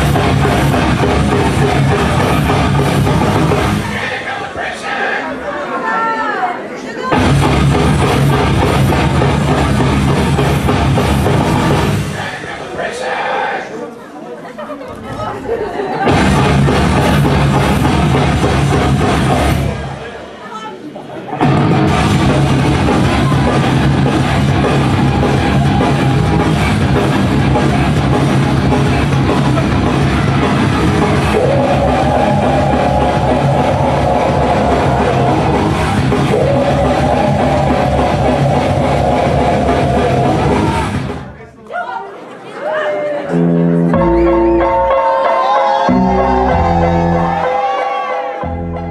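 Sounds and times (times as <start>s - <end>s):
rock band playing live: 0.0s - 4.0s, 7.2s - 12.2s, 16.0s - 20.0s, 21.4s - 41.3s
voices chattering in a hall: 0.0s - 48.9s.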